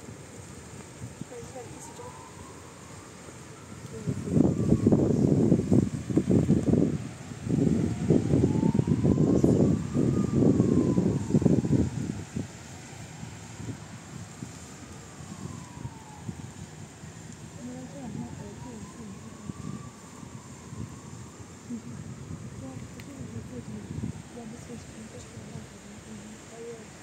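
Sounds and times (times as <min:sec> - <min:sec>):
siren wailing: 0:01.4 - 0:27.0.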